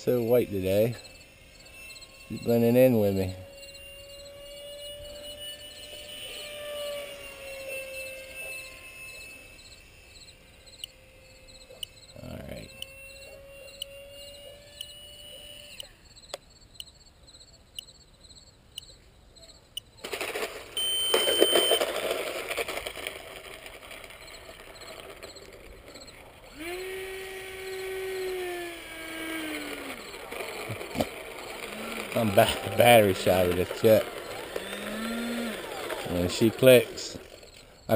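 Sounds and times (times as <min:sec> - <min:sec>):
electric jet motor whining: 0:00.0 - 0:16.1, 0:20.0 - 0:37.9
steady hum: 0:00.0 - 0:17.9, 0:20.6 - 0:37.9.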